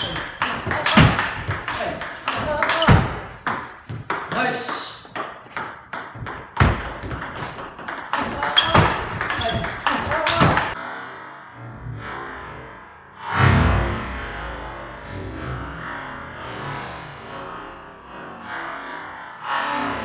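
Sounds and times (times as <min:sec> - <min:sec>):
ball bouncing on table: 0:00.0 - 0:10.8
ball clicking off paddles: 0:00.0 - 0:10.8.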